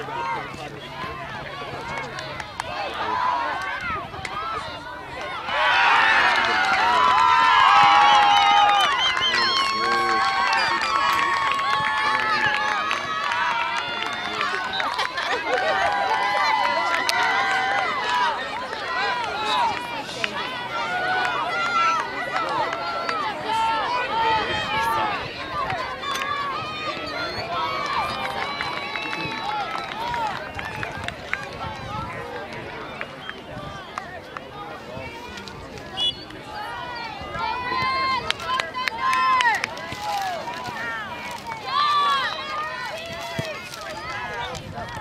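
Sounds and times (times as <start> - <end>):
people shouting and calling out: 0.0 - 45.0.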